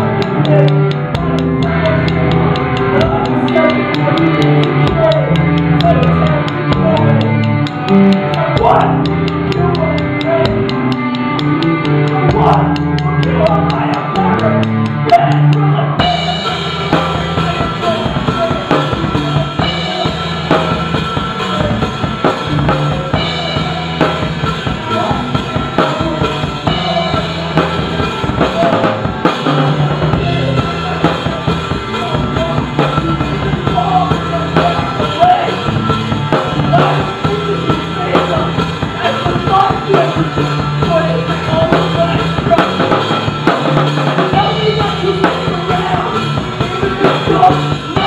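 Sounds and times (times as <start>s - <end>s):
drum kit beats: 0.0s - 48.0s
rock band playing live: 0.0s - 48.0s.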